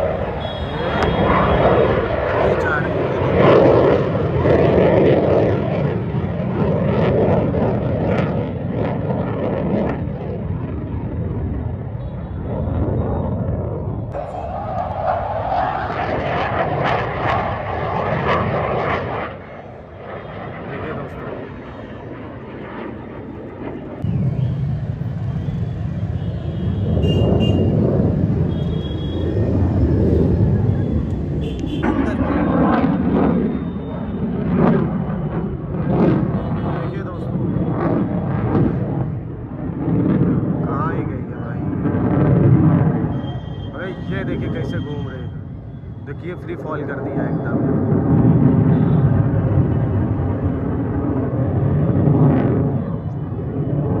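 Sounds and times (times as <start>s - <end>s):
jet aircraft flying overhead: 0.0s - 54.0s.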